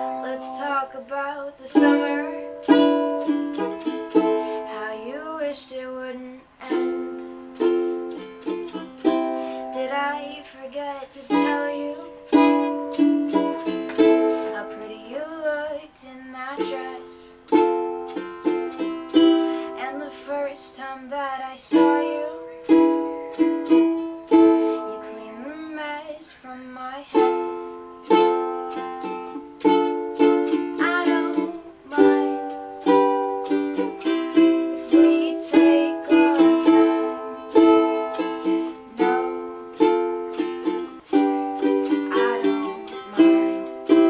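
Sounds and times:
ukulele strummed chords: 0:00.0 - 0:26.1, 0:27.0 - 0:44.0.

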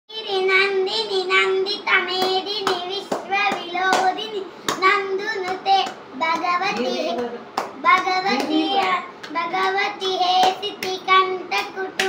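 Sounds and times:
sharp hand claps: 0:02.1 - 0:12.0.

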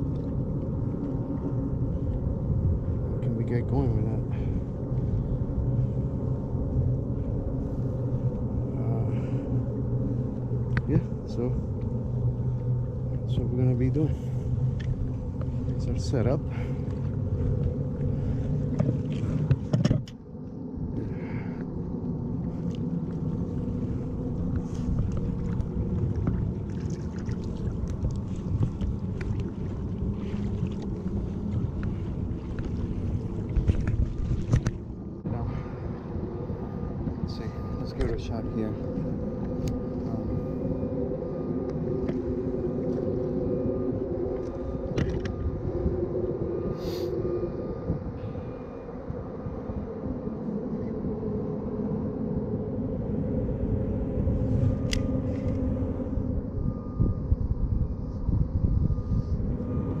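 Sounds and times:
motorboat engine drone: 0:00.0 - 1:00.0
wind on microphone: 0:00.0 - 1:00.0.

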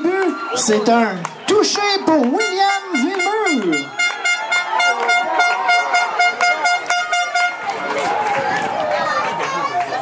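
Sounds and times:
people shouting: 0:00.0 - 0:10.0
horn long steady tone: 0:02.4 - 0:07.7.

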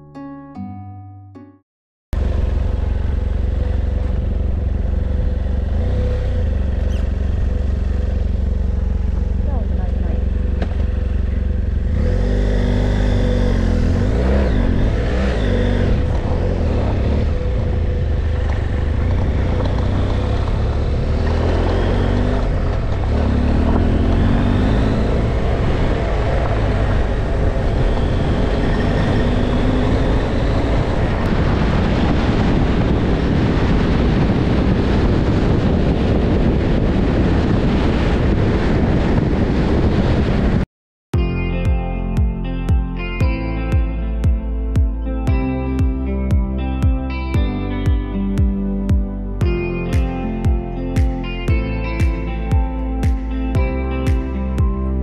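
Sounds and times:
motorcycle engine running: 0:02.2 - 0:39.7, 0:41.2 - 0:55.0
wind rumble on microphone: 0:02.2 - 0:40.6.

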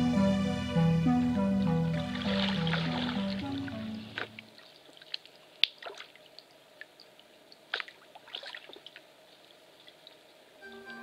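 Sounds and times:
background music: 0:00.0 - 0:04.4, 0:10.6 - 0:11.0
paddle splashing water: 0:02.0 - 0:06.2, 0:07.7 - 0:09.0.

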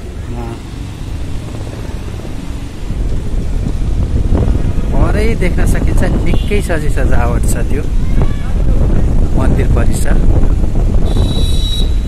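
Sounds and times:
motorcycle engine: 0:00.0 - 0:06.5
road noise: 0:00.0 - 0:12.0
wind on microphone: 0:01.0 - 0:12.0.

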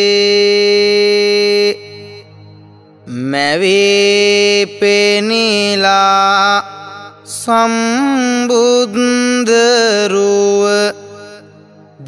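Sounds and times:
monk chanting: 0:03.1 - 0:12.0.

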